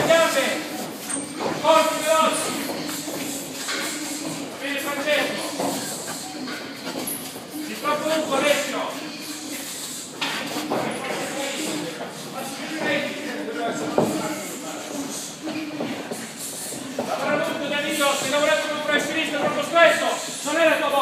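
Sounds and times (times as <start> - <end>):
shuffling footsteps on tiled floor: 0.0 - 21.0.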